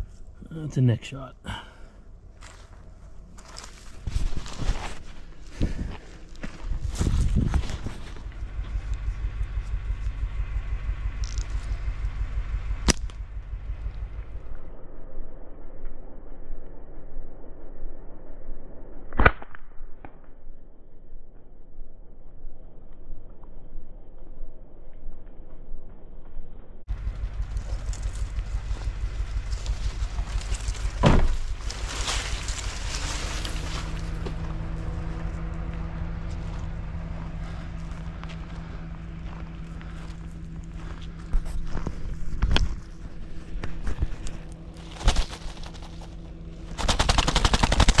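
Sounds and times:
vehicle rumbling on rough track: 0.0s - 15.0s, 26.8s - 48.0s
engine humming: 0.0s - 15.5s, 26.8s - 48.0s
branches scraping vehicle body: 2.4s - 9.8s, 26.9s - 40.4s, 41.3s - 48.0s
sharp knocks: 30.9s - 31.4s
loud fast rattle of clicks: 46.8s - 48.0s.

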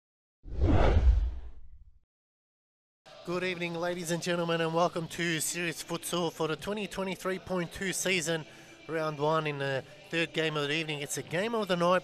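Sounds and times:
deep whoosh: 0.5s - 1.8s.

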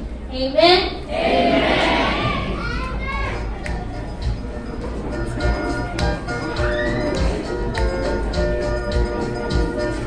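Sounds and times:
children's voices: 0.4s - 4.2s
background music: 1.8s - 10.0s.

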